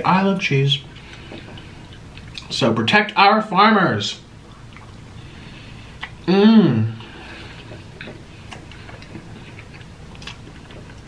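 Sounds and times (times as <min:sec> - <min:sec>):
chewing with mouth closed: 0:00.9 - 0:02.6, 0:04.5 - 0:05.1, 0:05.9 - 0:06.2, 0:07.0 - 0:11.0.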